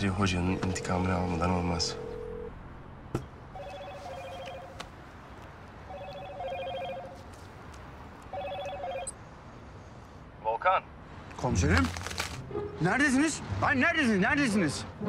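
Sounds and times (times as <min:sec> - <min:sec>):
mobile phone ringing: 0:00.1 - 0:02.5, 0:03.5 - 0:04.8, 0:05.8 - 0:07.3, 0:08.3 - 0:09.2.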